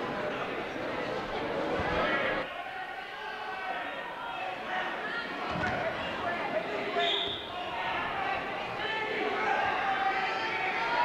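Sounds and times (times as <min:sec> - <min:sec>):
spectators and coaches calling out: 0:00.0 - 0:11.0.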